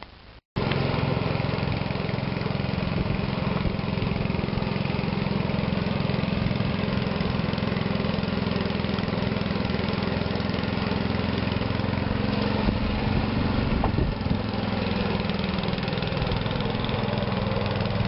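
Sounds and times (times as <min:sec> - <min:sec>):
small engine running steadily: 0:00.6 - 0:18.0.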